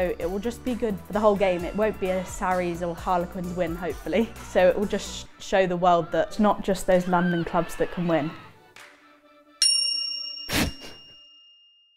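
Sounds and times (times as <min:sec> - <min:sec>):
background music: 0:00.0 - 0:10.7
bright bell-like ding: 0:09.6 - 0:11.8.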